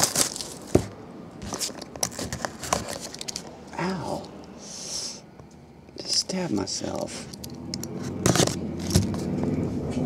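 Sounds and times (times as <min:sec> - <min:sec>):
knife slitting shrink wrap: 0:00.0 - 0:00.8
plastic wrap crinkling: 0:00.0 - 0:03.5.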